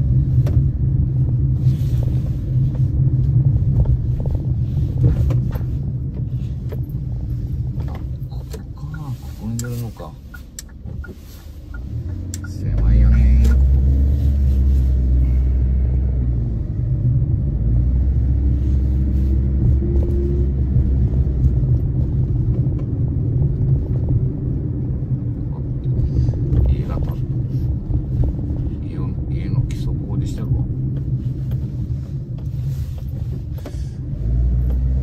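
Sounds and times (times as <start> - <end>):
car engine from inside cabin: 0.0 - 35.0.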